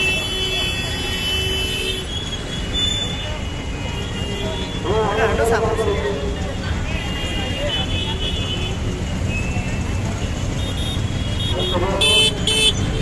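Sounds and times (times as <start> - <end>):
traffic engine rumble: 0.0 - 13.0
vehicle horn toots: 10.6 - 13.0.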